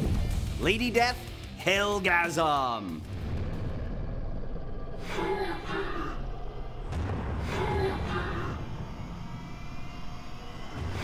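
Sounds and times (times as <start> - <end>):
low rumble: 3.0 - 11.0.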